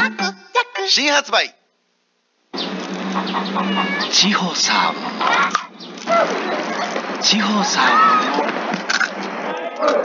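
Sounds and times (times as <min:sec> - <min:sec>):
steady background hiss: 0:00.0 - 0:09.5
cat meowing: 0:03.4 - 0:04.3, 0:07.8 - 0:08.4.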